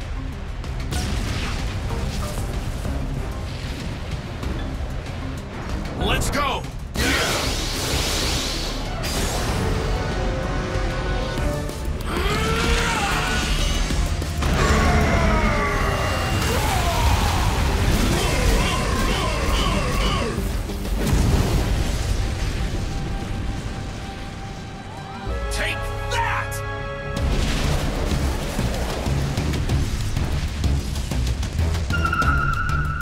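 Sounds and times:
dramatic cartoon battle music: 0:00.0 - 0:33.0
explosion and impact effects: 0:20.9 - 0:24.7, 0:27.2 - 0:31.5.

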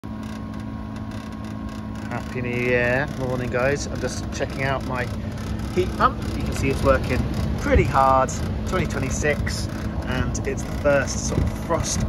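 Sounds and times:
heat pump fan humming: 0:00.0 - 0:12.0.

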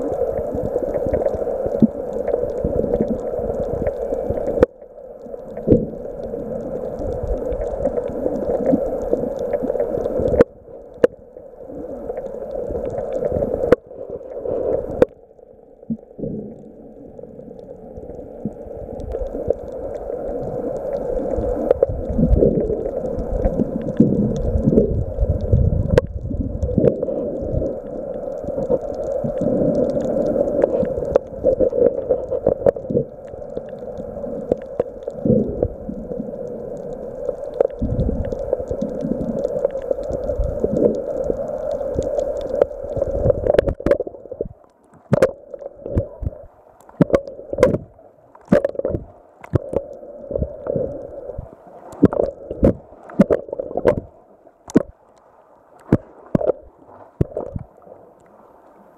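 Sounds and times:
water splashes and clicks: 0:00.0 - 0:11.2, 0:12.0 - 0:15.2, 0:17.6 - 0:58.8
underwater churning and gurgling: 0:00.0 - 0:58.9.

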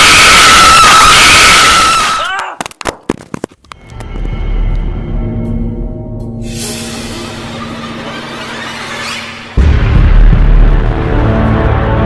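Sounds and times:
harsh high-pitched scream: 0:00.0 - 0:02.6
eerie music with low drone: 0:03.8 - 0:12.0.

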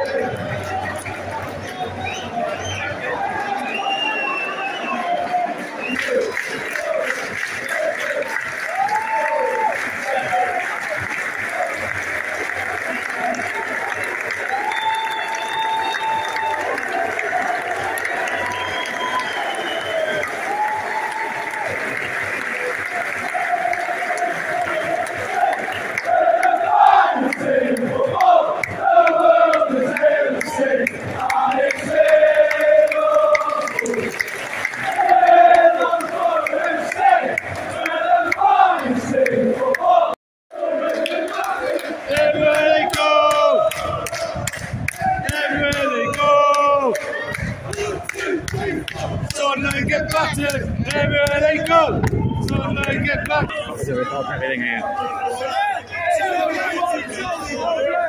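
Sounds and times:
crowd roar: 0:00.0 - 0:58.0
fans chanting and singing: 0:00.0 - 0:58.0.

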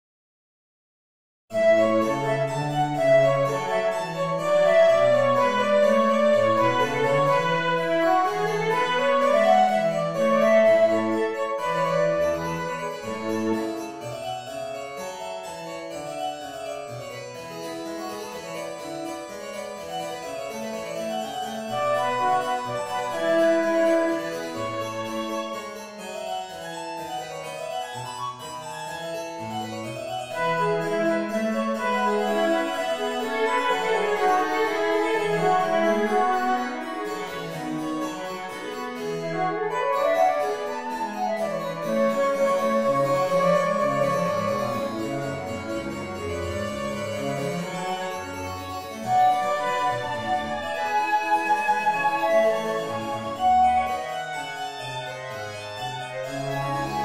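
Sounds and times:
flute: 0:01.5 - 0:14.2, 0:21.3 - 0:26.3, 0:30.3 - 0:57.0
violin: 0:01.5 - 0:57.0
harpsichord quick notes: 0:01.6 - 0:57.0
cello bass line: 0:30.4 - 0:54.2.

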